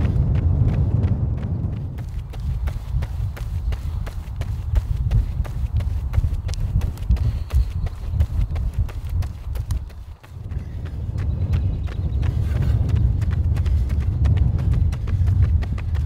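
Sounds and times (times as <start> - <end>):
low rumble: 0.0 - 16.0
running footsteps on asphalt: 0.0 - 16.0.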